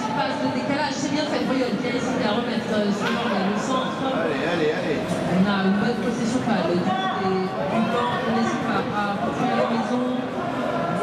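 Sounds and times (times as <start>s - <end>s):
echoing hall background: 0.0s - 11.0s.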